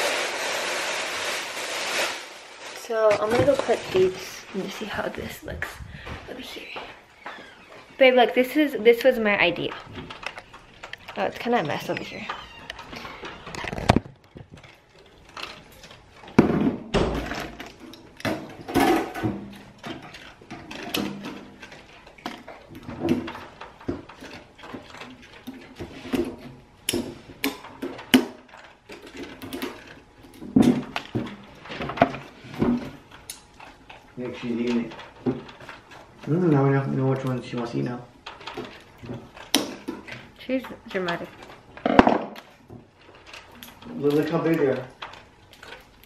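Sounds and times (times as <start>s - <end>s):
wire basket clicking and knocking: 8.8s - 46.0s.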